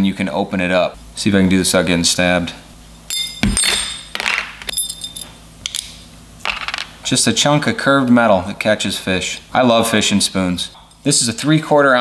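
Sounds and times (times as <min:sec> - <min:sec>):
metallic clinks: 0:03.1 - 0:05.4.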